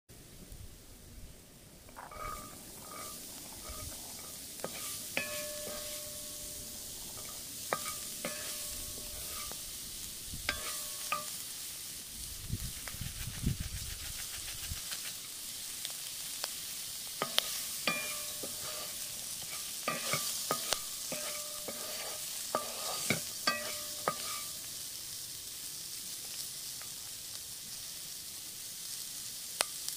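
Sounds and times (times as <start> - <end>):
food sizzling in a pan: 0.2 - 29.9
wooden spoon scraping a pan: 1.9 - 9.8, 10.5 - 11.4, 17.2 - 24.6
spoon knocking on metal pan: 4.7 - 9.6, 10.5 - 11.3, 17.2 - 18.8, 22.6 - 24.5.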